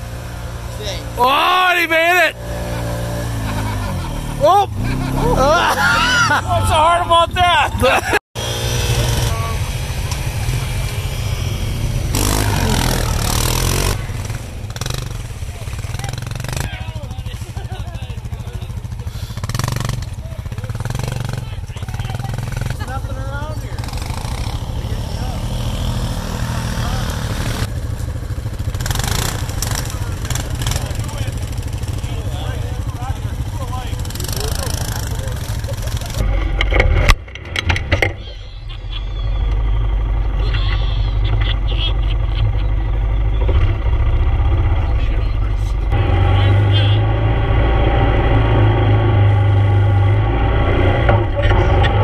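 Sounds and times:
quad engine revving: 0:00.0 - 0:52.0.

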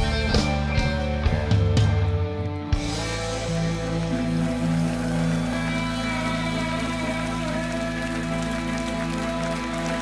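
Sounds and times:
audience clapping: 0:02.4 - 0:10.0.

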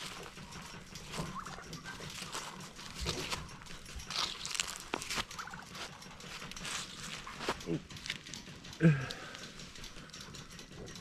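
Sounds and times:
turkeys gobbling: 0:00.0 - 0:08.3.

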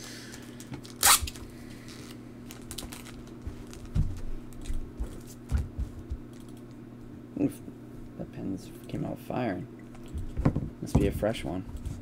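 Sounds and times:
plastic sleeve rustling: 0:00.3 - 0:04.0.

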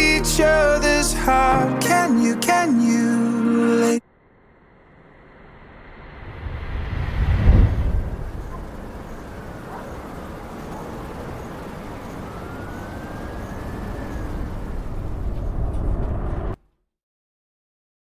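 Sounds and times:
faint gliding tones: 0:04.1 - 0:16.0
rushing rumbling noise: 0:04.2 - 0:16.6
loud low boom: 0:04.3 - 0:09.2.

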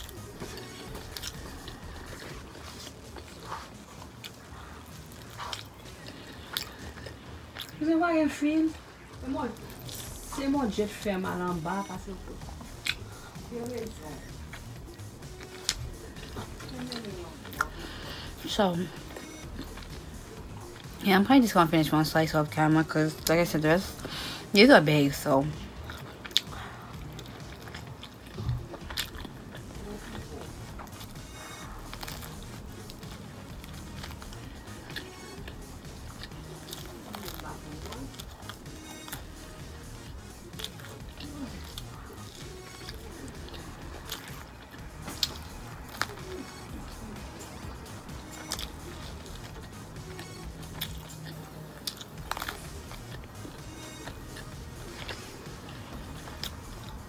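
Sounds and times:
biting and chewing pizza: 0:00.0 - 0:57.0
faint background music: 0:00.0 - 0:57.0.

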